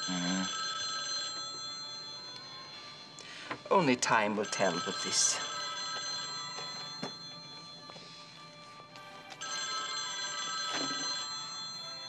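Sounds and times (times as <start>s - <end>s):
telephone bell ringing: 0.0s - 3.2s, 4.1s - 8.2s, 8.8s - 12.0s.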